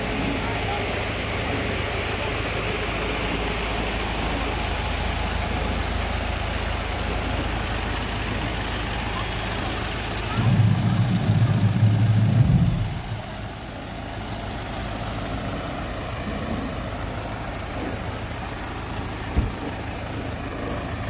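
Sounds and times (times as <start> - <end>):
diesel bus engines idling: 0.0 - 21.0
loud low rumble: 0.0 - 21.0
steady background noise: 0.0 - 21.0.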